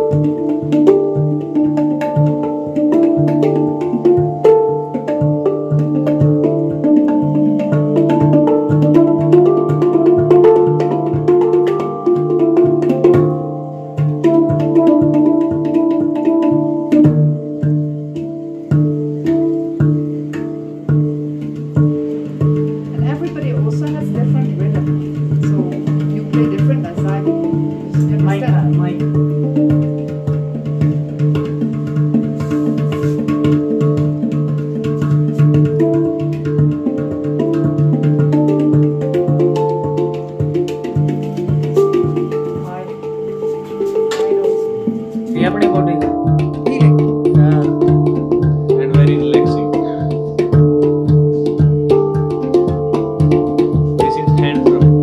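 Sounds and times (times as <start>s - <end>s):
handpan notes: 0.0s - 55.0s.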